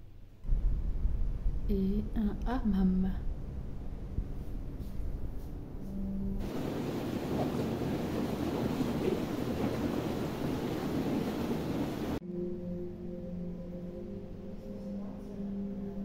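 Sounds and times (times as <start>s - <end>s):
ambient relaxation music: 3.2s - 16.0s
jacuzzi jets bubbling water: 6.4s - 12.2s.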